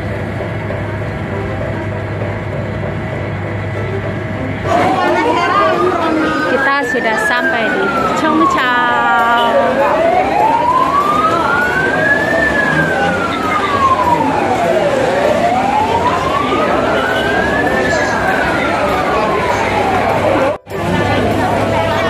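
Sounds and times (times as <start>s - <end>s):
crowd chatter: 0.0s - 22.0s
siren wailing: 4.6s - 22.0s.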